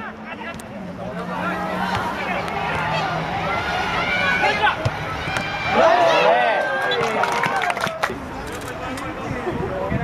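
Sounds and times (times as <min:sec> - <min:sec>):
voices shouting over one another: 0:01.3 - 0:07.7.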